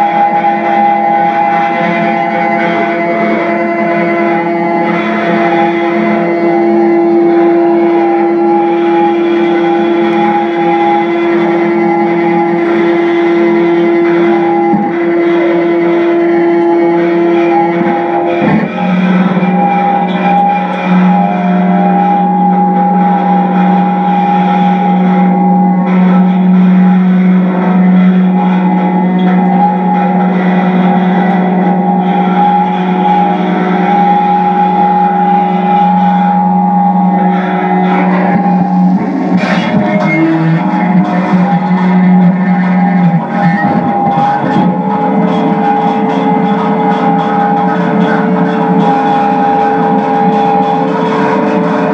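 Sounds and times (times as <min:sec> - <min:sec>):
electric guitar electronic drone: 0:00.0 - 0:51.9.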